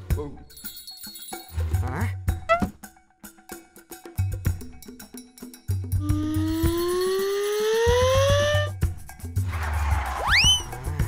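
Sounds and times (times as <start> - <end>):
background music with low beat: 1.5 - 11.0
rising whistle-like tone: 6.2 - 8.7, 10.2 - 10.8.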